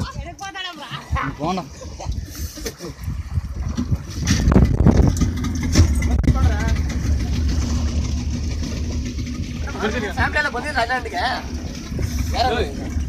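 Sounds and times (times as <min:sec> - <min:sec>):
motorboat engine humming: 0:00.0 - 0:13.0
water splashing against hull: 0:00.0 - 0:13.0.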